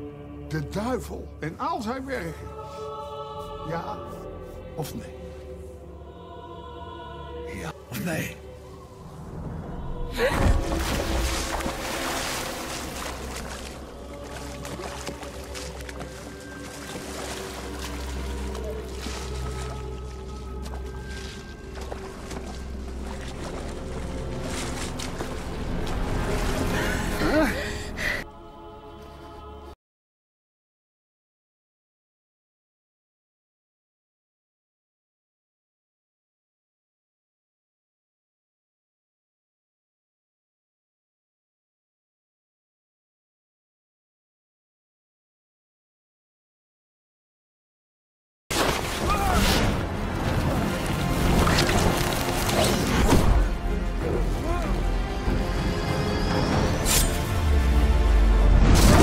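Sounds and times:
low music drone: 2.3 - 29.6, 49.8 - 59.0
water sloshing in a wooden tub: 10.4 - 26.7.

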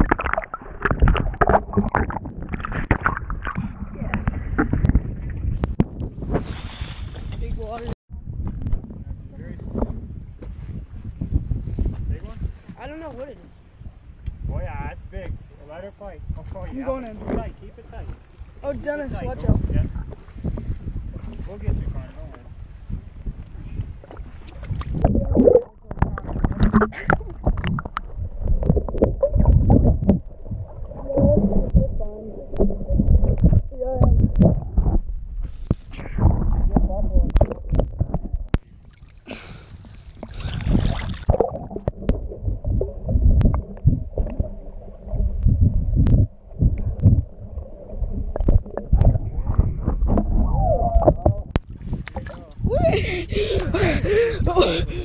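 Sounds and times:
water sloshing and gurgling: 0.0 - 10.1, 16.3 - 55.0.

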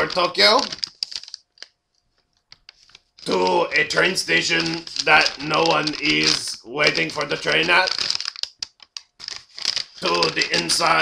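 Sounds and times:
sharp clicks and crackles: 0.0 - 11.0.

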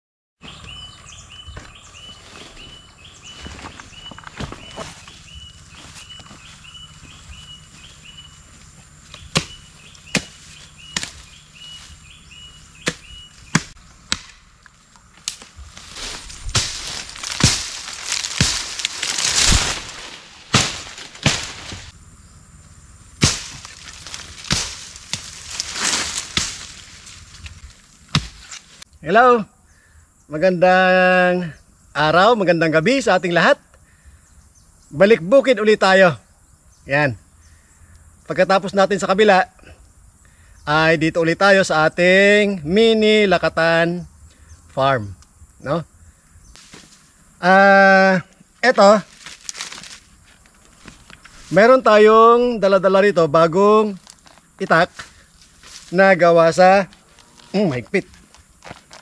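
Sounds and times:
high chirp: 0.4 - 13.6
blade chopping brush: 5.8 - 12.0, 15.2 - 21.9, 23.2 - 28.8
blade slashing through vegetation: 9.1 - 11.8, 15.2 - 21.9, 23.2 - 28.8, 49.1 - 50.1.

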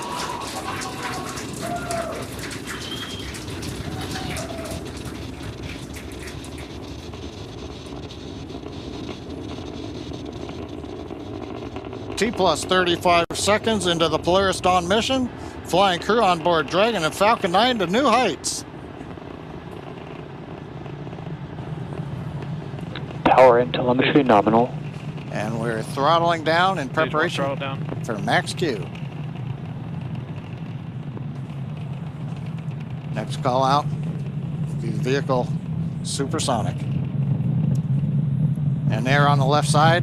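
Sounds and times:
rocket engines rumbling: 0.0 - 40.0.

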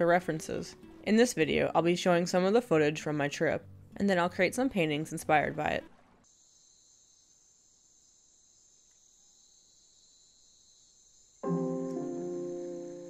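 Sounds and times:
high-pitched insect chorus: 6.3 - 11.5
loud held music chord: 11.4 - 13.0.

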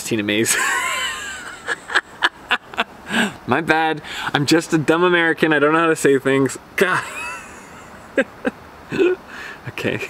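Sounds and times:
man laughing: 0.5 - 3.4, 6.8 - 10.0
breathy chuckles: 7.1 - 9.2.

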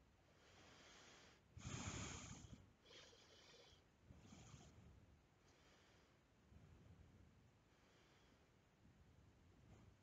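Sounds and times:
soft breathing through the nose: 0.2 - 8.7.

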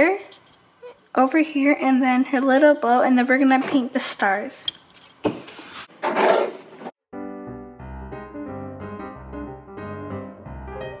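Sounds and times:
wood scraping rub: 5.0 - 6.9.

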